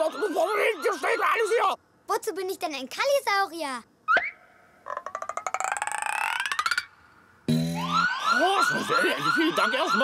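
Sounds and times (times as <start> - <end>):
clicks climbing in pitch: 4.8 - 7.0.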